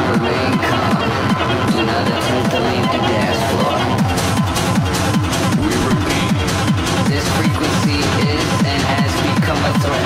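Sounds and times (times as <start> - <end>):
fast techno kick drum: 4.0 - 8.8
gritty percussion and synths: 4.5 - 8.4.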